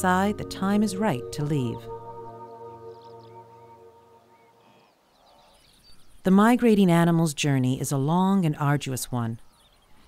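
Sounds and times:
soft background music: 0.0s - 4.8s.

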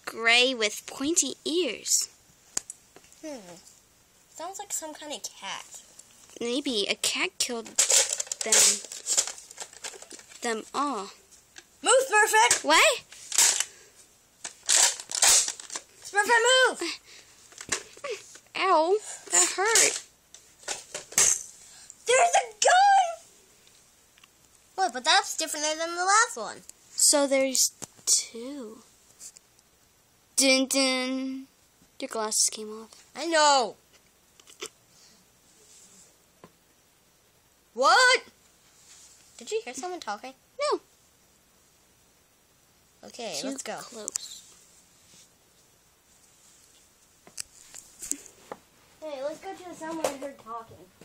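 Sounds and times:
toys clicking and knocking: 7.5s - 10.5s, 12.4s - 12.8s
soft rustling: 38.5s - 39.9s, 43.2s - 50.9s.

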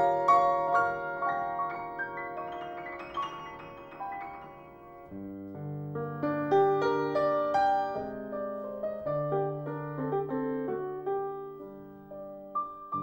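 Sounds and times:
piano music: 0.0s - 13.0s.

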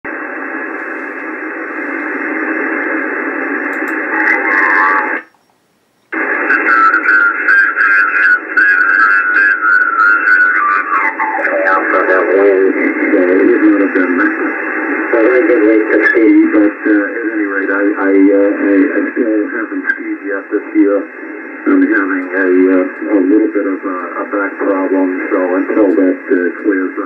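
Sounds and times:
radio band hiss: 0.1s - 5.3s, 6.0s - 27.0s
man speaking over radio: 4.0s - 5.2s, 6.2s - 27.0s
garbled whistling radio signals: 6.2s - 17.5s.

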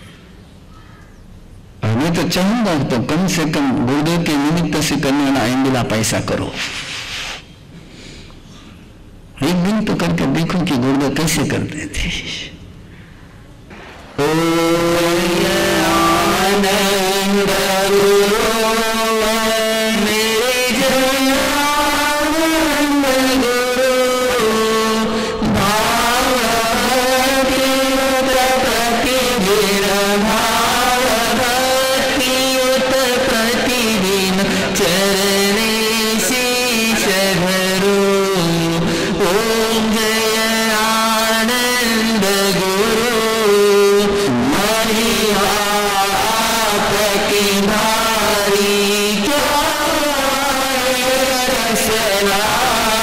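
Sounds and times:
monks chanting sustained notes: 13.7s - 18.8s
voices singing devotional chant: 13.8s - 18.8s, 25.5s - 38.2s.

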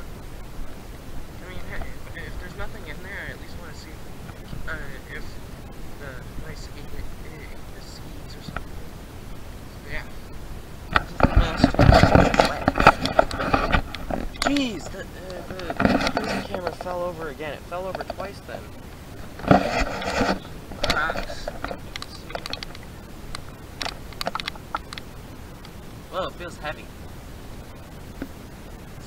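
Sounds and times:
young man talking or humming: 6.0s - 9.1s
camera handling clicks and rustles: 23.4s - 25.1s.

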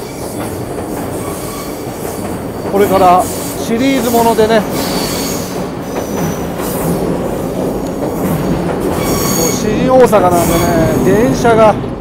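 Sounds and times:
electric train rumbling overhead: 0.0s - 12.0s.

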